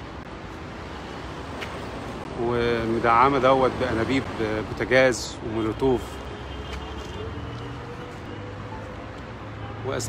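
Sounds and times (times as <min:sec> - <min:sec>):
street traffic rumble: 0:00.0 - 0:10.0.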